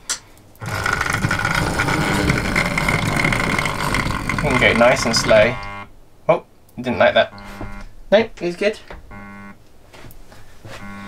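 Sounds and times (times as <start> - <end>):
wheels rumbling on rails: 0.6 - 5.8
model train motor whine: 0.6 - 5.9.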